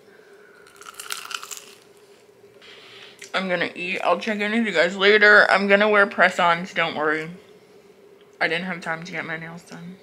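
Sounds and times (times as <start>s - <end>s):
crunchy bite into fried pastry: 0.6s - 2.0s.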